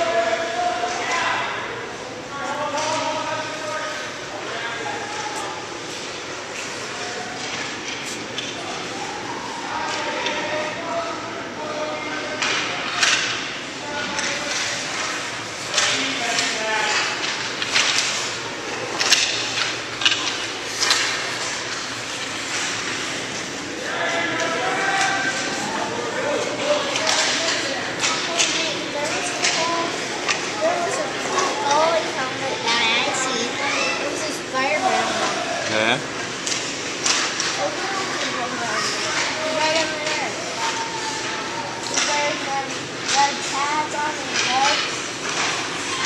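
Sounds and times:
hockey sticks and puck clacking: 0:12.4 - 0:33.2, 0:36.2 - 0:46.0
voices shouting: 0:23.5 - 0:36.1, 0:37.4 - 0:44.9.

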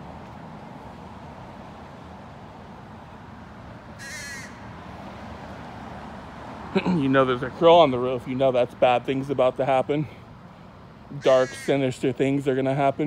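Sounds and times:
outdoor background noise: 0:00.0 - 0:13.0
crow cawing: 0:04.0 - 0:04.7, 0:11.2 - 0:11.8.

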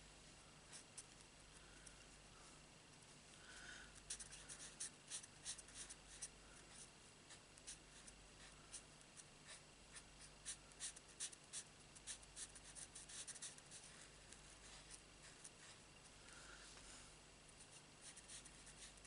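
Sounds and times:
marker nib scratching on cardstock: 0:04.0 - 0:14.0, 0:17.7 - 0:19.0.

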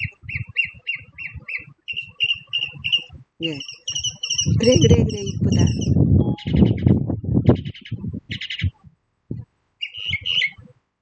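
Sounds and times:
bird chirping rapidly: 0:00.0 - 0:08.8, 0:09.8 - 0:10.6
wind buffeting microphone: 0:00.0 - 0:10.8.

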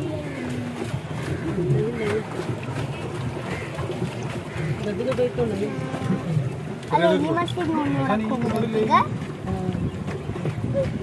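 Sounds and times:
people talking: 0:04.8 - 0:09.9.

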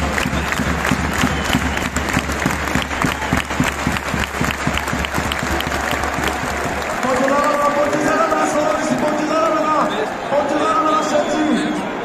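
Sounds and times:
stadium crowd applauding: 0:00.0 - 0:12.0.

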